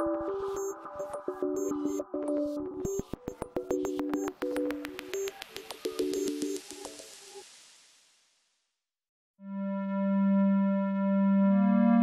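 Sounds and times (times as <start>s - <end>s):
sustained electronic keyboard tone: 0.0s - 6.6s.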